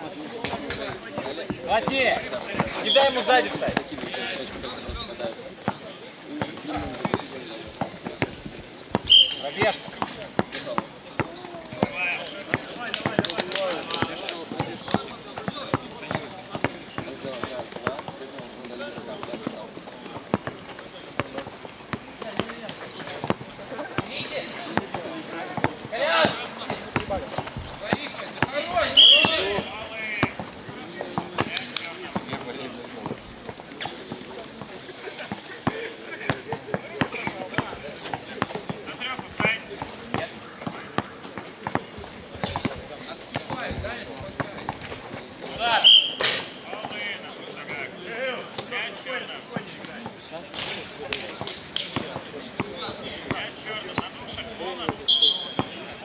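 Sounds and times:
players shouting: 0.9s - 4.7s, 23.7s - 31.5s.

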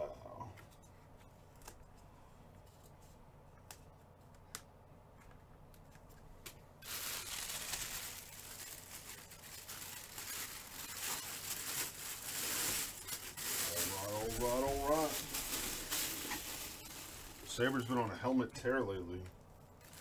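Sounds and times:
plastic bag crinkling: 6.8s - 18.8s, 19.4s - 20.0s.

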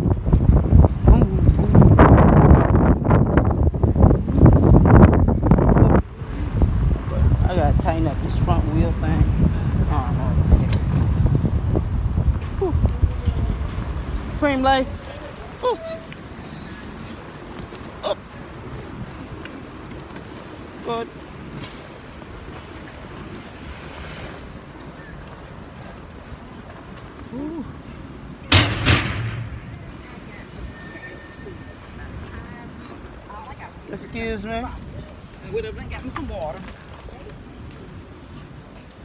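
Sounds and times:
city street noise: 0.0s - 39.0s
loud sharp knocks: 28.5s - 29.6s.

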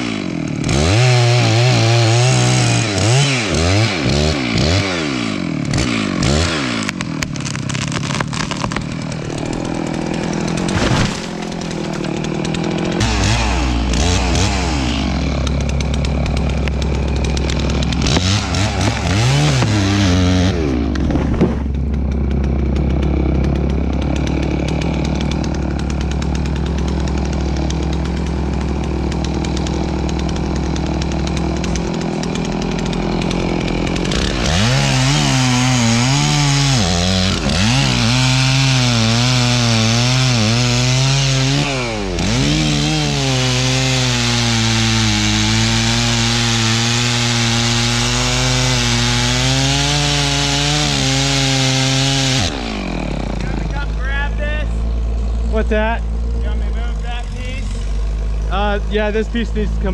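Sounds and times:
chainsaw cutting wood: 0.0s - 59.9s.

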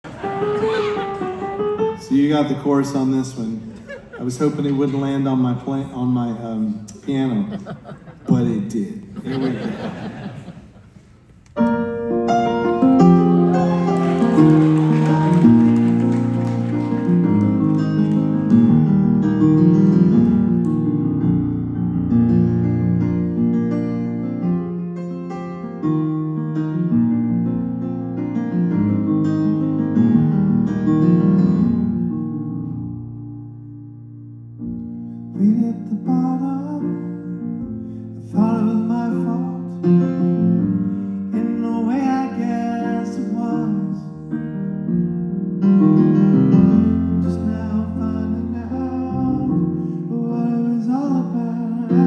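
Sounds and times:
grand piano chords: 0.0s - 7.0s, 11.4s - 52.0s
man singing: 35.3s - 37.4s, 38.2s - 40.0s, 41.3s - 44.2s, 47.2s - 52.0s.

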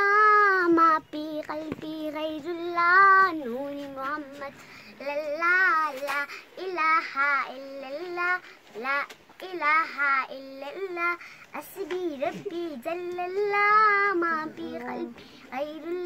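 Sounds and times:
girl singing unaccompanied: 0.0s - 16.0s.

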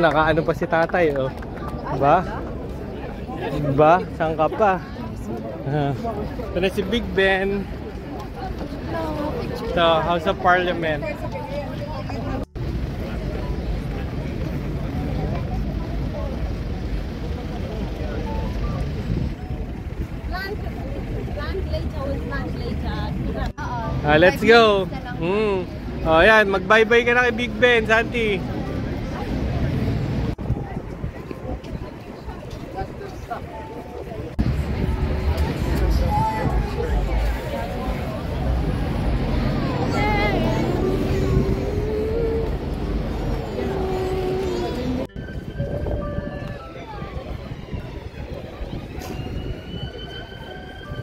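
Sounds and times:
crowd chatter: 0.0s - 51.0s
traffic rumble: 0.0s - 51.0s
nearby voices: 35.6s - 45.1s.

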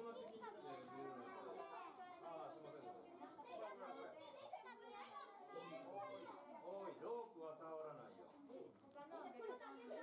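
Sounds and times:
chatter of people and children: 0.0s - 10.0s.

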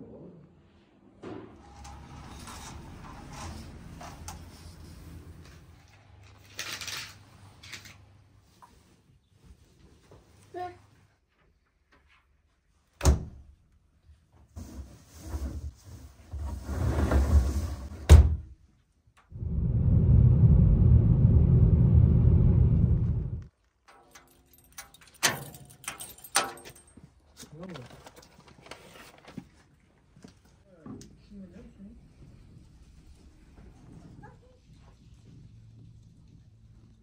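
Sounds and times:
car road noise on snowy highway: 19.4s - 23.5s.

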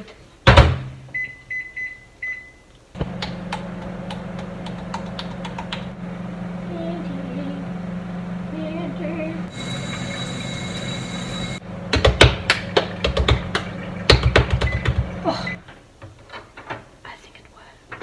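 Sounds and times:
microwave humming: 3.0s - 15.6s
keypad beeps: 14.6s - 15.0s.

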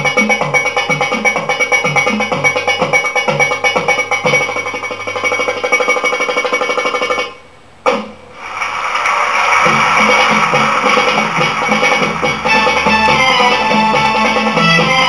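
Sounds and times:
sharp drum hit: 0.0s - 8.5s, 9.6s - 15.0s
fast drum rhythm: 0.0s - 15.0s.

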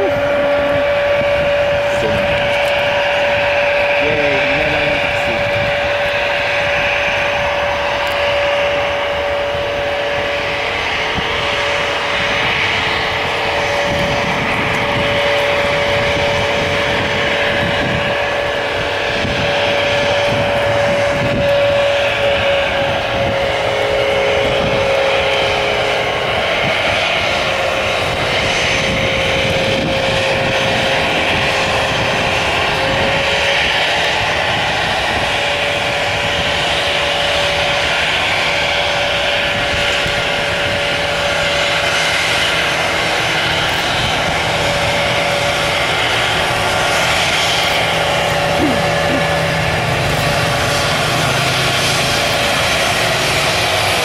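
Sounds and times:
jet engines whining: 0.0s - 54.0s
lower engine whine: 0.0s - 54.0s
rushing noise and low rumble: 0.0s - 54.0s.

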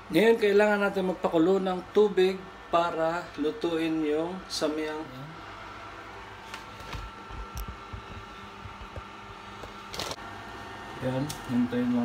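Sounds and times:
appliance fan hum: 0.0s - 12.0s.

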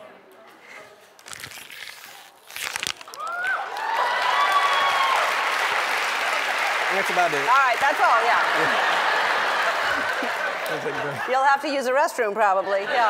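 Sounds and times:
plastic bottle crinkling: 1.2s - 3.6s
audience cheering and whooping: 3.1s - 11.2s.

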